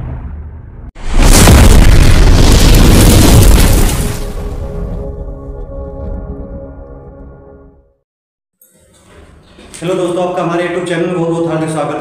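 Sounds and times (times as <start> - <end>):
cinematic boom with deep rumble: 0.0 - 5.2.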